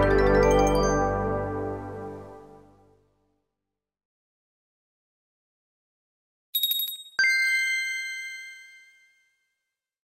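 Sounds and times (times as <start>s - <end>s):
bell-like chime ringing: 6.6s - 9.5s.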